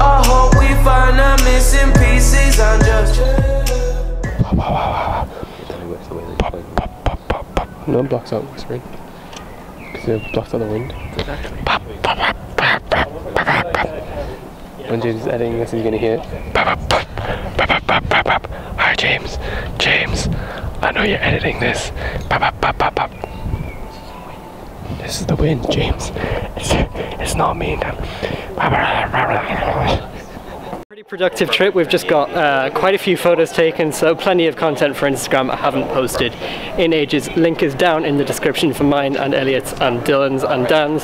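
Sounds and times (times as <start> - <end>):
background music: 0.0 - 5.0
wind buffeting microphone: 4.3 - 30.8
faint voices: 4.4 - 41.0
sharp pops: 6.4 - 7.8
short burst of voice: 11.6 - 14.1.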